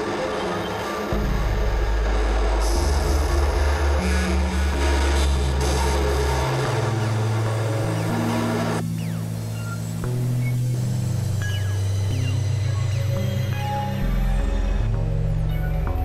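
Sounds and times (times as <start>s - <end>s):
dense noisy hiss: 0.0s - 15.4s
synthesizer drone music: 0.0s - 16.0s.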